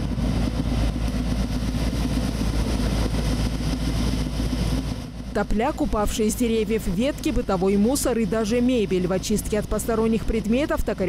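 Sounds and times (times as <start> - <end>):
machine engine running: 0.0 - 11.0.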